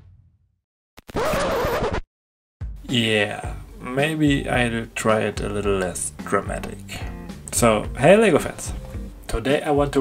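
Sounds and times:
man speaking: 2.9 - 10.0.

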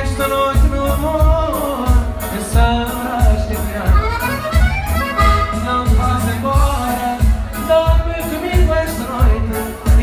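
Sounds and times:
electronic accordion melody: 0.0 - 10.0
steady bass beat: 0.0 - 10.0.

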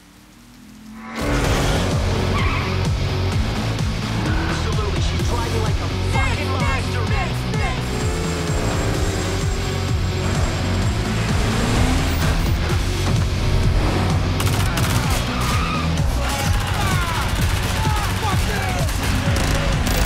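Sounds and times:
car engine: 0.0 - 20.0
loud driving music: 0.0 - 20.0
tyres skidding: 0.8 - 20.0.

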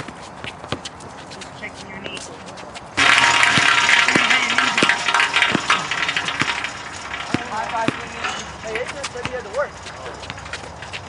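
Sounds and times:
basketball bouncing on concrete: 0.0 - 2.3, 3.0 - 11.0.

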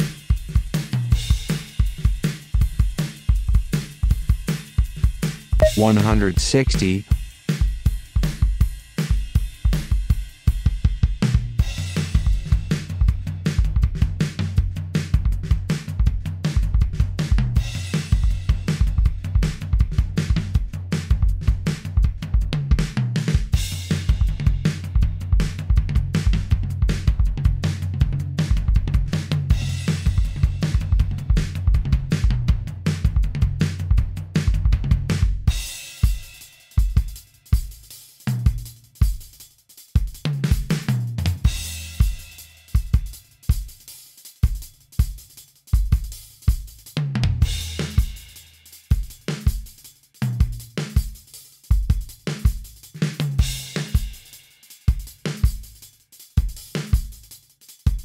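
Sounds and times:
programmed drum beat: 0.0 - 58.0.

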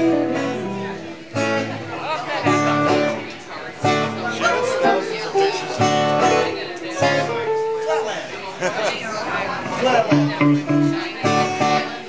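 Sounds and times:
upright bass: 0.0 - 1.8, 10.0 - 12.0
guitar strummed chords: 0.0 - 8.0, 10.1 - 12.0.

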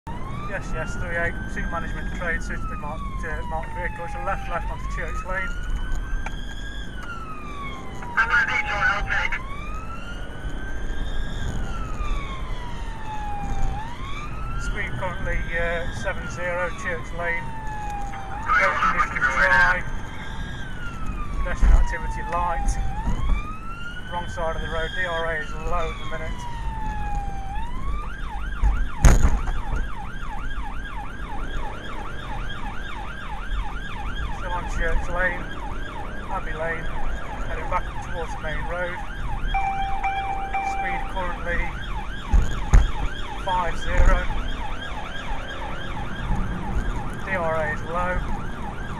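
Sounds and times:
car engine and tyres rumbling: 0.0 - 48.9
police siren wailing: 0.1 - 48.9.

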